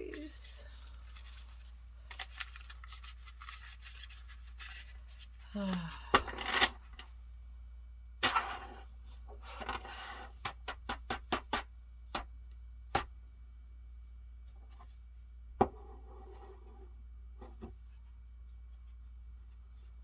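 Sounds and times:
cards being shuffled: 0.0 - 5.9.

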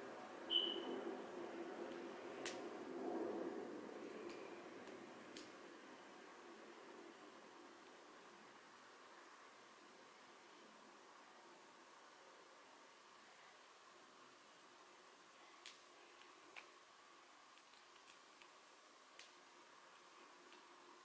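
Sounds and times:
hands rustling hair: 15.5 - 21.0.

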